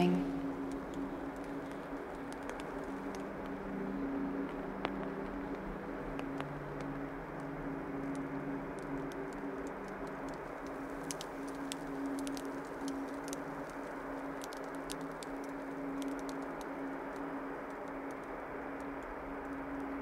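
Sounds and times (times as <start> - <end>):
sustained ambient drone tones: 0.0 - 20.0
faint ticks: 0.4 - 20.0.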